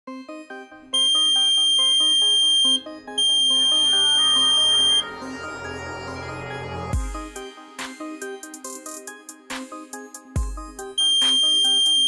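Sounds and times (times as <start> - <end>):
high-pitched buzzer beeps: 1.0 - 5.0, 11.0 - 12.0.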